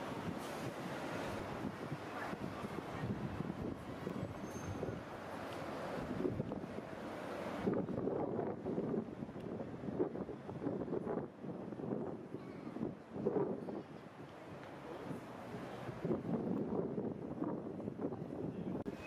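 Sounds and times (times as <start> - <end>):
wind buffeting microphone: 0.0 - 5.3, 5.9 - 19.0.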